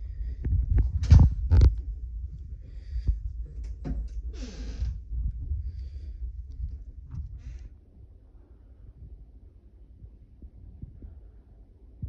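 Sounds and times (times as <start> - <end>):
phone camera handling rumble: 0.8 - 1.9.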